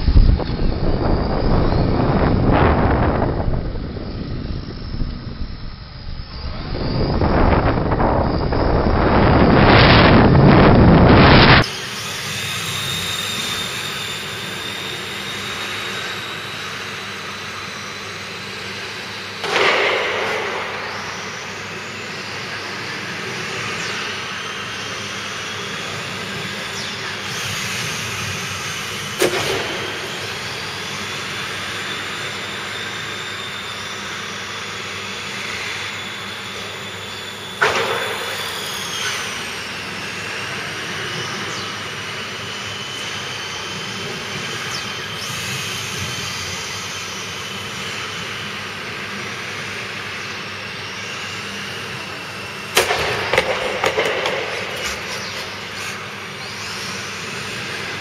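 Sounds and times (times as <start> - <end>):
electric toy car motors whining: 0.0 - 19.6, 20.8 - 58.0.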